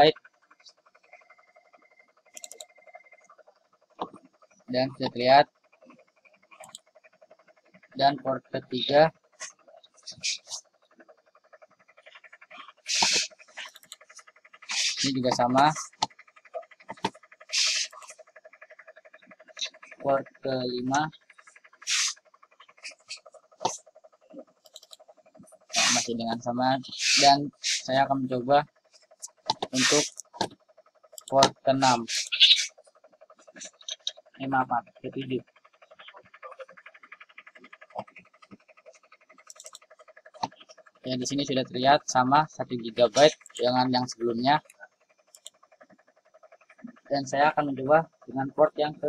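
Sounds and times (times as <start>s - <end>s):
faint buzzing drone: 0.0s - 49.0s
faint rapid pulsing: 0.0s - 49.0s.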